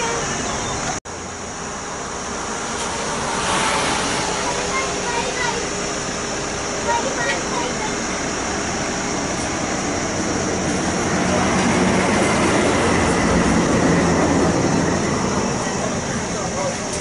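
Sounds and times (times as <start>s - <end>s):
heavy vehicle rumbling past: 0.0s - 17.0s.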